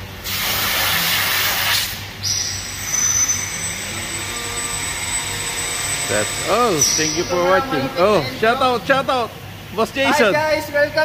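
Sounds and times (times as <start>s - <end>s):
machine hum with high whine: 0.0s - 11.0s
hose spraying water on concrete: 0.2s - 2.0s.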